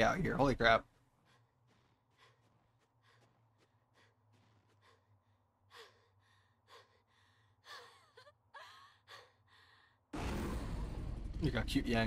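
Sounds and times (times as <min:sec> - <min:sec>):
low hum: 0:10.2 - 0:12.0.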